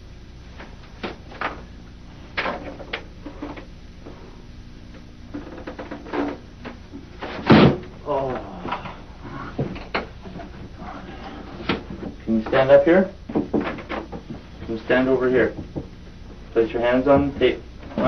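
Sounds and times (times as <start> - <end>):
knocks and clatter on desk: 5.3 - 6.4, 13.3 - 14.5.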